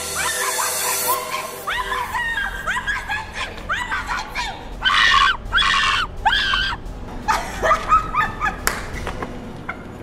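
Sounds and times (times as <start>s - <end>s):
woman laughing loudly: 0.2s - 4.7s, 7.2s - 9.1s.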